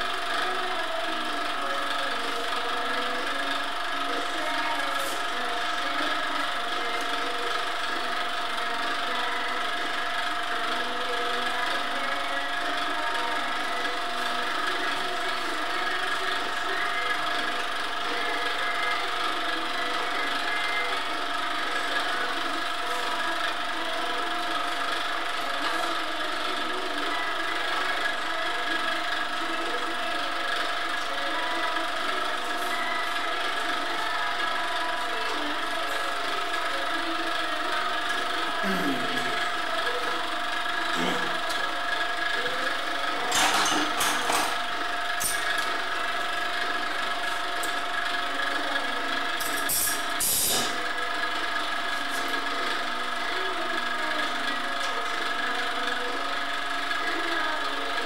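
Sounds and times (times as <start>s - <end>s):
steady machine hum: 0.0s - 58.0s.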